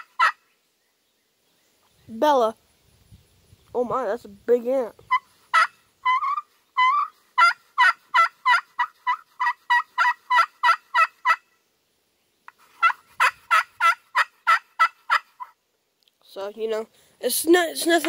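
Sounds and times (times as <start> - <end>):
turkey call yelping: 0.0 - 0.4, 5.1 - 11.4, 12.7 - 15.6.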